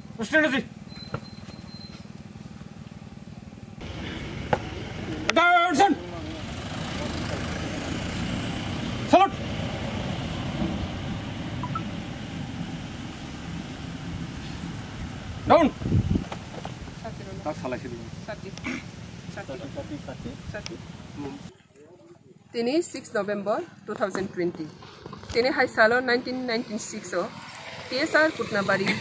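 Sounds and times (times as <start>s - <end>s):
outdoor background noise: 0.0s - 29.0s.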